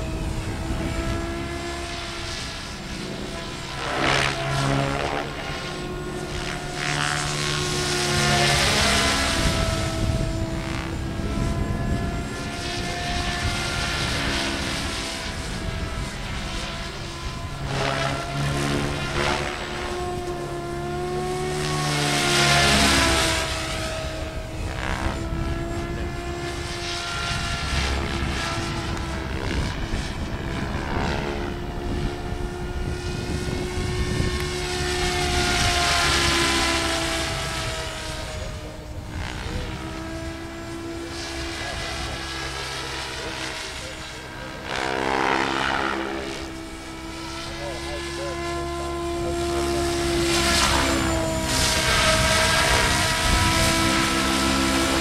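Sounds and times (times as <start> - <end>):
radio-controlled helicopter whine: 0.0 - 55.0.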